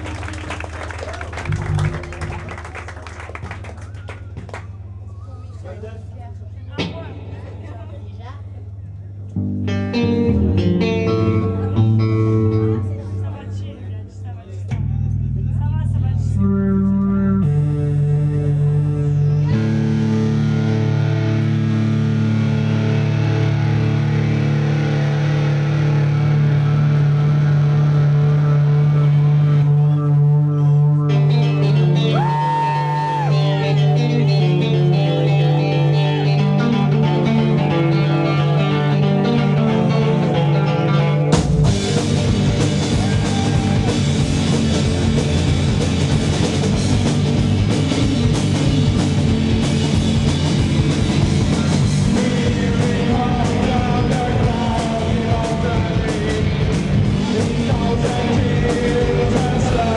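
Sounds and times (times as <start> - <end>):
audience clapping: 0.0 - 5.0
live band electric guitar and bass: 0.0 - 5.1, 9.2 - 59.9
low bass note: 9.0 - 31.8.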